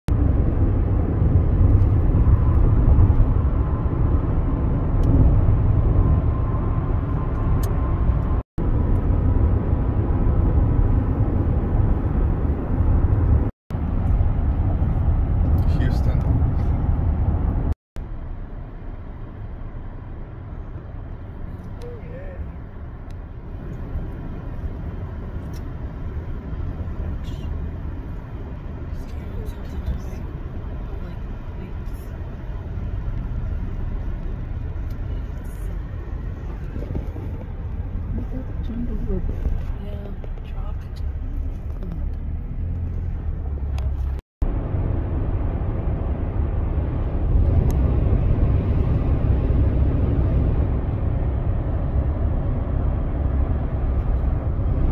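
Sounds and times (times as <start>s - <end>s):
road and tyre noise in car: 0.1s - 54.9s.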